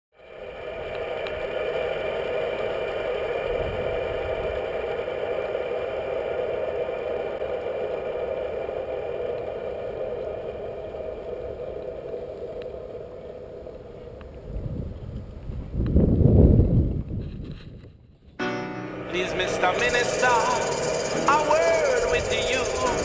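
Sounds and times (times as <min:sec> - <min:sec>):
longboard wheels rolling over asphalt: 0:00.2 - 0:18.3, 0:18.9 - 0:23.0.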